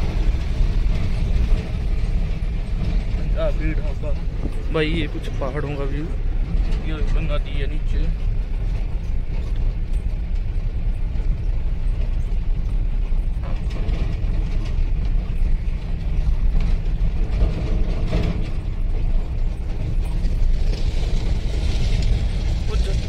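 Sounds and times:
cab rattling and knocking: 0:00.0 - 0:23.0
vehicle engine and tyres rumbling: 0:00.0 - 0:23.0.

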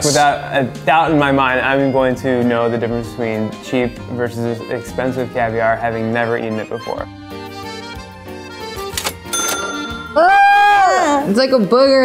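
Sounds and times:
bell ding: 0:09.3 - 0:11.2
high-pitched held vocal note: 0:10.0 - 0:11.3.

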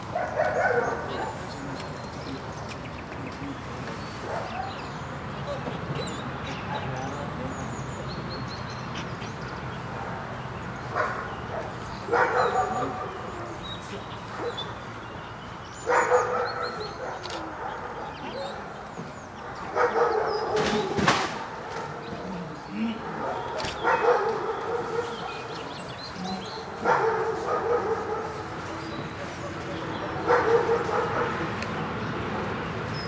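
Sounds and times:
dog barking: 0:00.1 - 0:01.4, 0:04.2 - 0:04.8, 0:10.9 - 0:13.3, 0:14.3 - 0:14.7, 0:15.8 - 0:18.7, 0:19.5 - 0:22.0, 0:23.0 - 0:25.6, 0:26.6 - 0:28.6, 0:30.1 - 0:31.5
sharp cracks: 0:20.6 - 0:21.9.

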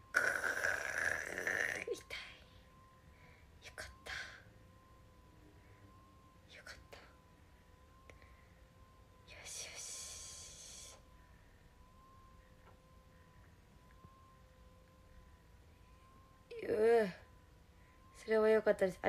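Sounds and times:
faint steady hum: 0:00.0 - 0:19.0.

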